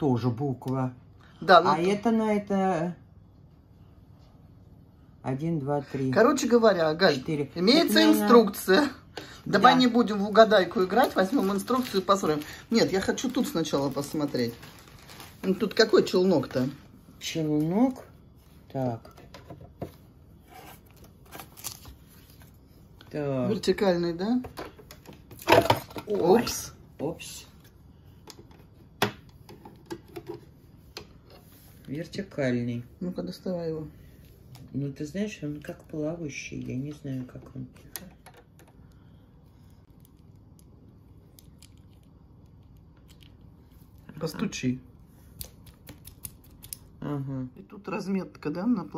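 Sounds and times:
low room hum: 0:00.0 - 0:48.9.

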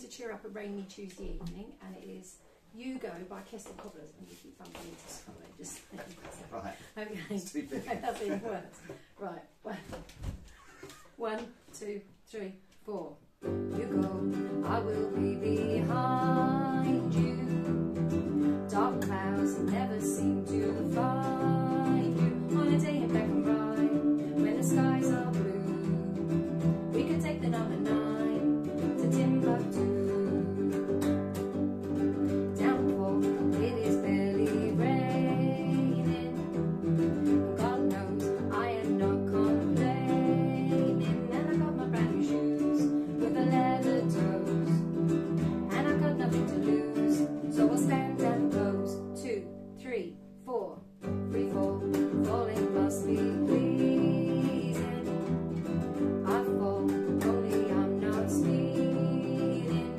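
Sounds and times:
woman singing: 0:11.2 - 0:59.9
ukulele strumming: 0:13.4 - 0:49.3, 0:51.0 - 0:59.9
acoustic bass guitar plucked: 0:13.5 - 0:49.8, 0:51.1 - 0:59.9.

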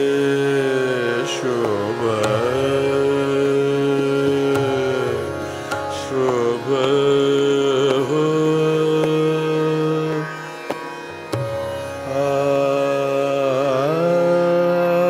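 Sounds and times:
man singing long ornamented notes: 0:00.0 - 0:15.0.

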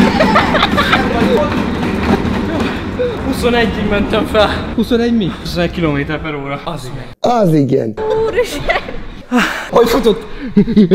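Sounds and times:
treadmill rumbling: 0:00.0 - 0:06.9.

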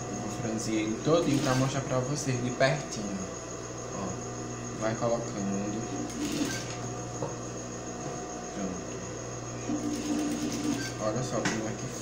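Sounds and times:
industrial sewing machine running: 0:01.1 - 0:01.8, 0:06.1 - 0:06.8, 0:09.8 - 0:11.2.

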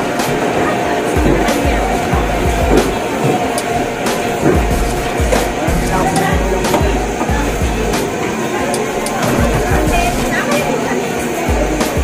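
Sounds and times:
music with bass beat: 0:00.0 - 0:08.2, 0:08.8 - 0:10.5, 0:11.5 - 0:12.0.

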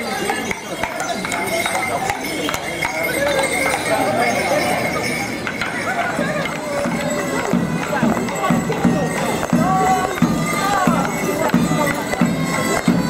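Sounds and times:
crowd chatting: 0:00.0 - 0:13.0
sharp clinks and clicks: 0:00.0 - 0:13.0.

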